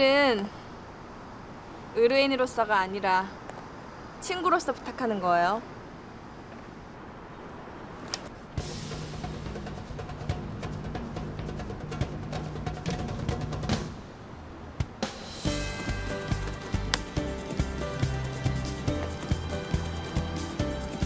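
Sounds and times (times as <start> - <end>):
drum-led background music: 8.5 - 14.1, 14.8 - 21.0.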